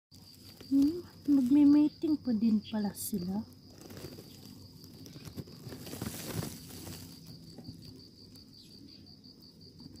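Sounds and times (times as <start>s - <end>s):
insect chirping: 0.1s - 10.0s
brief rustling: 3.7s - 7.9s.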